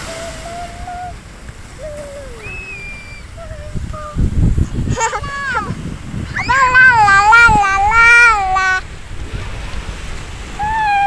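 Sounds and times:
high-pitched drawn-out cry: 4.9 - 8.8, 10.6 - 11.0.

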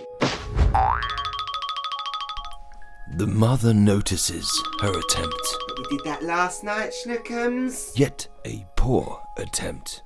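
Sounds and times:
cartoon boing sliding up: 0.8 - 1.2
bright ticking notes: 0.9 - 7.4.

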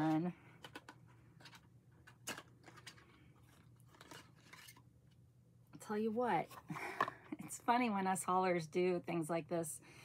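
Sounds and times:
light rustling of packaging: 0.0 - 5.2.

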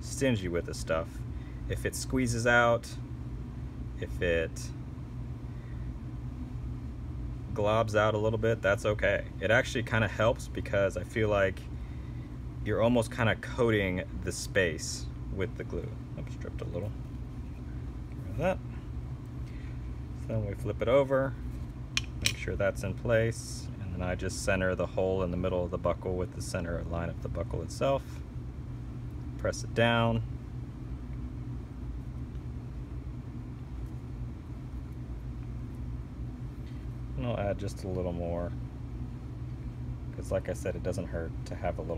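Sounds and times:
low background hum: 0.0 - 41.9.

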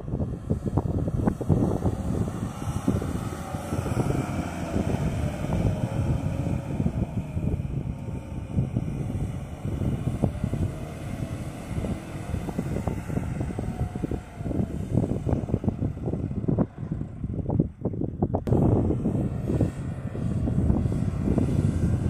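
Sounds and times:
pickup engine revving: 0.0 - 17.6, 18.4 - 22.0
wind buffeting microphone: 0.0 - 22.0.

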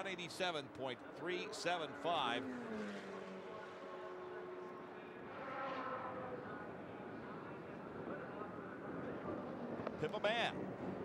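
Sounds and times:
louder higher engine sound: 0.0 - 10.8
race car engine at speed: 0.0 - 11.0.

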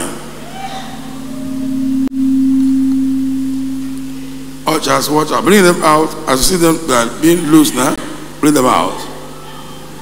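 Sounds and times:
sustained low tone: 1.0 - 4.8.

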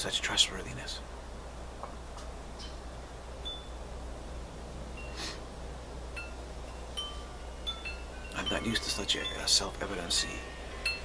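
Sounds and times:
steady low hum: 0.0 - 11.0
wind chimes: 3.4 - 3.8, 5.0 - 5.2, 6.1 - 11.0.

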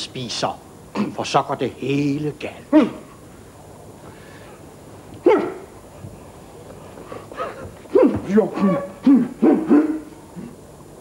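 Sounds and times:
man gagging: 2.7 - 3.1, 7.4 - 10.6.

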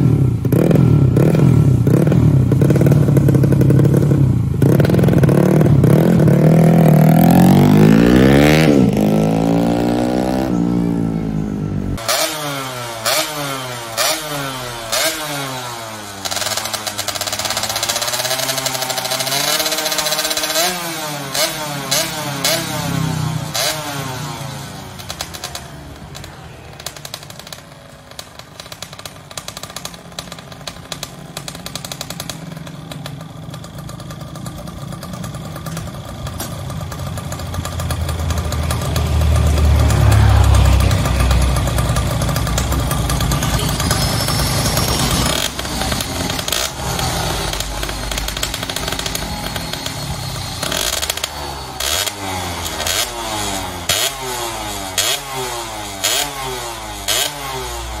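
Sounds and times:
two-stroke motorcycle engine revving: 0.0 - 58.0.

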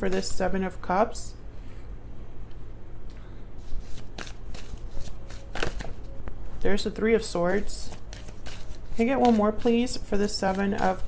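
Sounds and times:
cards being shuffled: 3.6 - 6.1, 6.7 - 11.0.

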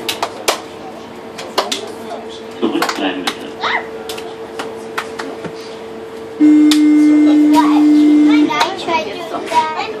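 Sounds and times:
loud steady tone: 6.4 - 8.7
girls talking and laughing: 8.4 - 10.0.

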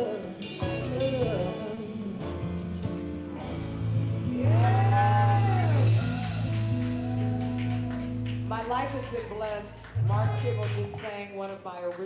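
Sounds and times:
man and woman singing: 0.0 - 2.5, 4.2 - 6.5
keyboard: 0.0 - 11.8.

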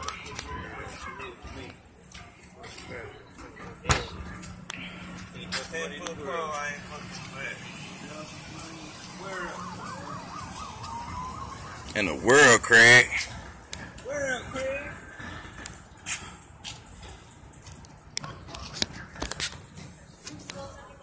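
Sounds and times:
background chatter: 0.0 - 21.0
siren warbling: 7.4 - 13.0.

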